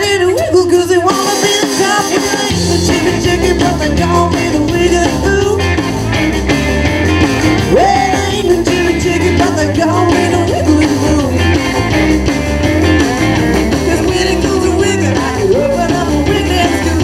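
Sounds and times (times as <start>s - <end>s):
drum kit: 0.0s - 17.0s
electric bass: 0.0s - 17.0s
electric guitars: 0.0s - 17.0s.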